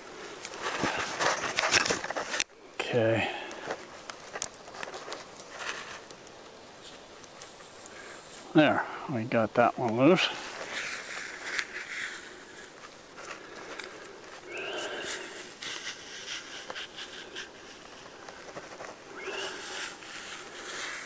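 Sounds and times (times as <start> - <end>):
bark scraping and cracking: 0.4 - 2.5, 3.5 - 8.2, 10.5 - 21.0.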